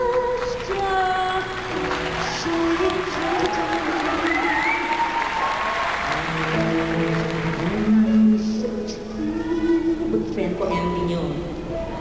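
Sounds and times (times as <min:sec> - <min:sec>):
audience applause: 0:00.4 - 0:08.0.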